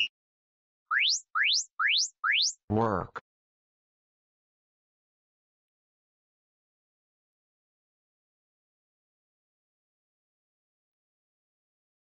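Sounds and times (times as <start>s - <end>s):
quick rising chirps: 0.9s - 2.6s
short timer beep: 0.9s - 2.6s.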